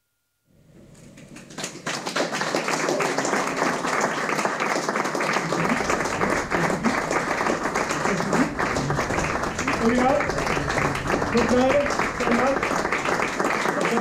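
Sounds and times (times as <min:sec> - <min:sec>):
audience applauding: 0:01.1 - 0:14.0.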